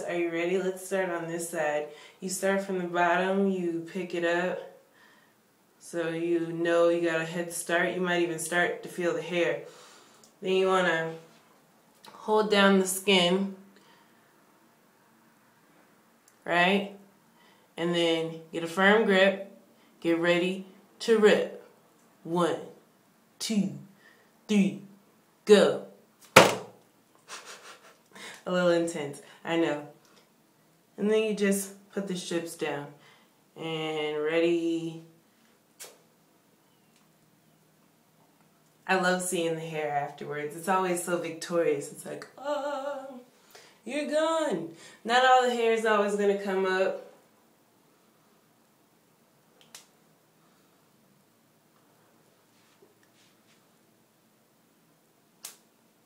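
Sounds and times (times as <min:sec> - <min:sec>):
faint breathy noise: 0:01.9 - 0:02.2, 0:04.8 - 0:05.5, 0:17.2 - 0:17.8, 0:33.0 - 0:33.5.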